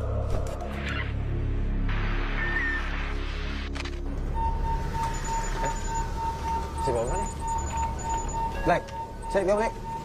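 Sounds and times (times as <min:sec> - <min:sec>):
high steady electronic tone: 0:04.2 - 0:10.0.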